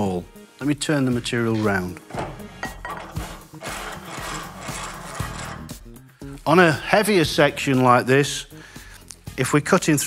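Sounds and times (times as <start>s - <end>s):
background music: 0.0s - 10.0s
metal bar scraping in vise: 1.4s - 6.0s.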